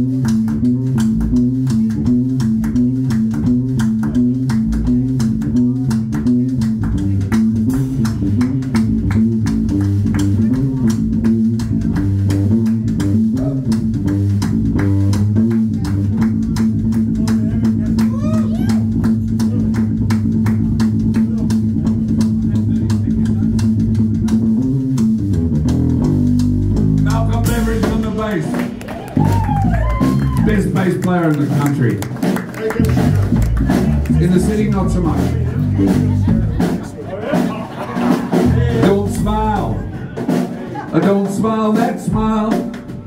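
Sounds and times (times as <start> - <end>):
drum kit beat: 0.0 - 43.0
electric bass: 0.0 - 43.0.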